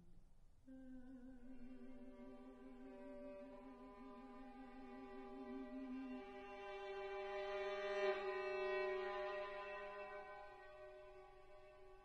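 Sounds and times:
soprano singing: 0:00.7 - 0:11.8
violin playing: 0:02.2 - 0:11.6.

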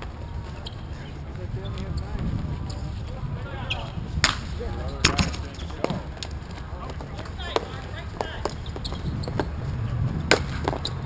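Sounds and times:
hockey sticks clacking: 0:10.3 - 0:11.0.

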